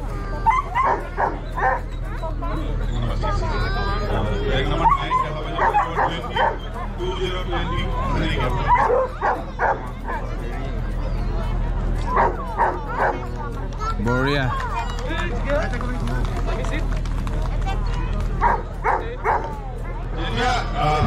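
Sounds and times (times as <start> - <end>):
dogs barking and yipping: 0.0 - 3.4, 4.1 - 13.5, 18.4 - 20.0
crowd chatter: 0.0 - 21.0.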